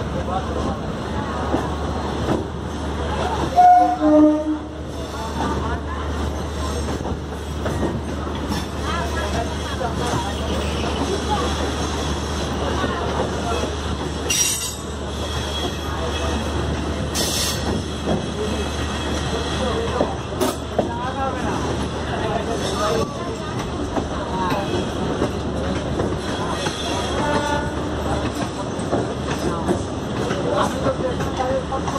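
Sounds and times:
train wheels rumbling on rails: 0.0s - 31.9s.

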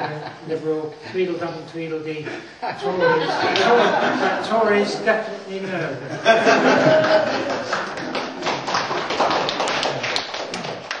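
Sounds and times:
audience clapping: 6.8s - 11.0s.

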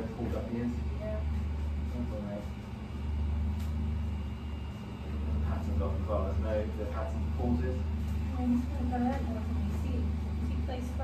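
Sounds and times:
machinery low hum: 0.0s - 11.0s.

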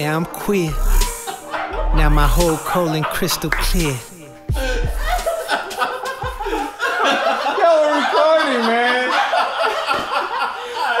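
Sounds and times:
men laughing: 0.5s - 11.0s.

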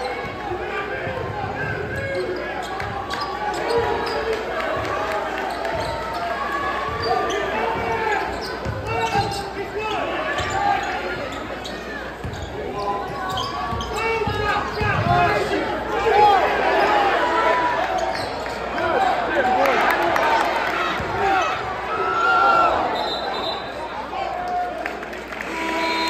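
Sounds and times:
crowd chatter: 0.0s - 26.0s.

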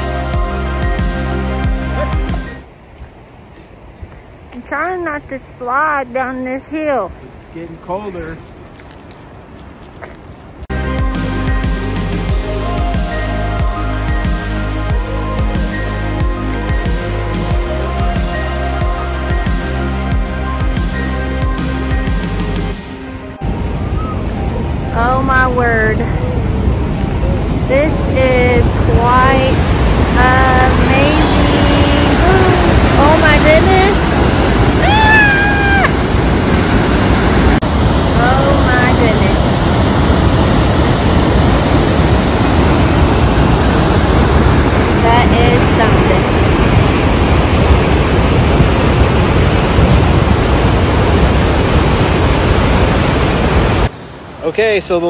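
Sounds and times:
waterfall roaring: 23.0s - 55.0s
people's voices: 30.2s - 34.0s.

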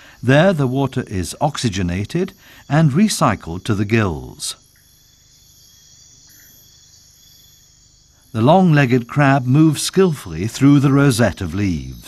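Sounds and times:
faint insect chirp: 0.0s - 12.0s
night insects trilling: 0.0s - 12.0s.

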